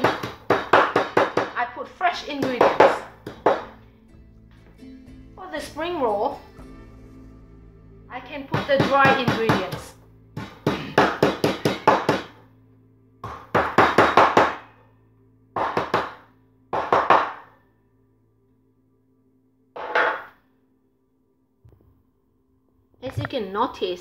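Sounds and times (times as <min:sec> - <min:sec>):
knife chopping on wooden board: 0:00.0 - 0:01.6, 0:10.4 - 0:12.3.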